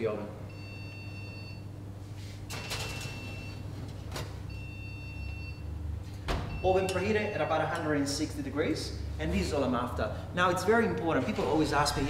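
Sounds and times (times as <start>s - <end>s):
steady low hum: 0.0s - 12.0s
oven electronic tone: 0.4s - 8.1s.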